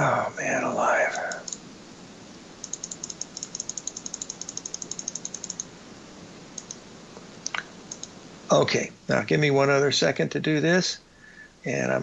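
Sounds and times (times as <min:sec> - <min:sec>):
keyboard typing clicks: 0:02.6 - 0:05.7, 0:06.6 - 0:06.8, 0:07.5 - 0:08.1.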